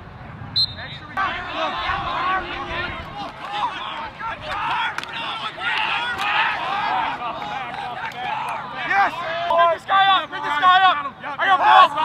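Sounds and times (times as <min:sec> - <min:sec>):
crowd shouting and cheering: 0:00.6 - 0:12.0.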